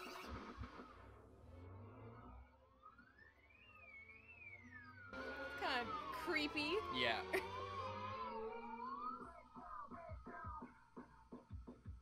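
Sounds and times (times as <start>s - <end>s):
gliding electronic tone: 0.0s - 9.2s.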